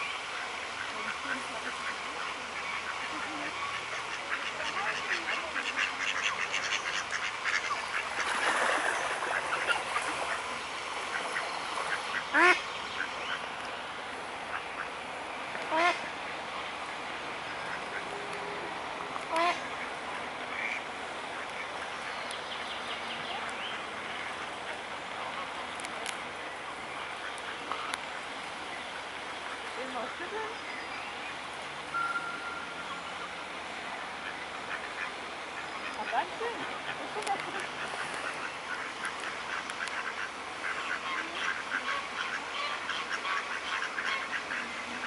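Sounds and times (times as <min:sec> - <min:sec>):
birds in background: 0:00.0 - 0:18.6, 0:19.4 - 0:45.0
waterfowl honking: 0:00.8 - 0:10.5, 0:11.1 - 0:13.5, 0:15.7 - 0:16.1, 0:19.3 - 0:19.9, 0:34.2 - 0:45.0.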